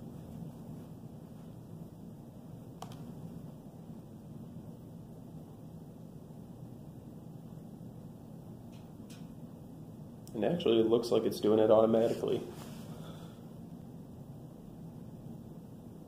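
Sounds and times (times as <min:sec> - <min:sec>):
computer mouse clicks: 0:02.8 - 0:03.1.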